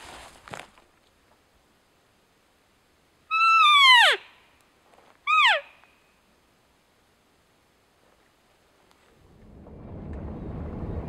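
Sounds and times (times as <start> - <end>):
elk call: 3.3 - 4.4, 5.3 - 5.9.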